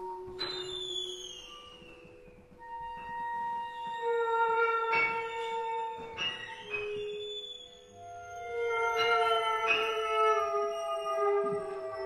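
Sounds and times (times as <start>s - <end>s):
chamber ensemble sliding tones: 0.0s - 12.0s.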